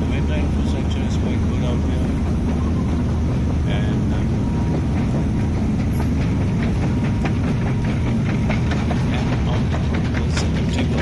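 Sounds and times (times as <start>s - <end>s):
escalator rumbling: 0.0s - 11.0s
escalator clicks and ticks: 0.2s - 11.0s.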